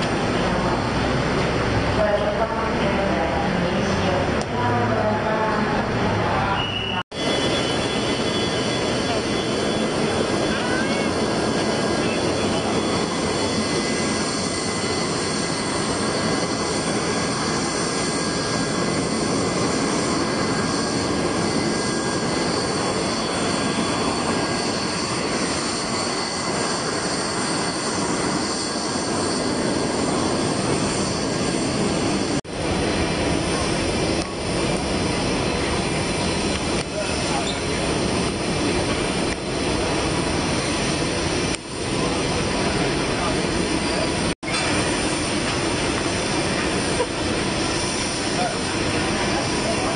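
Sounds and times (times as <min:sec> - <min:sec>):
high whine: 0:00.0 - 0:49.9
voices: 0:02.0 - 0:07.0, 0:36.6 - 0:38.1, 0:48.2 - 0:49.9
jet airliner engine running: 0:07.1 - 0:49.9.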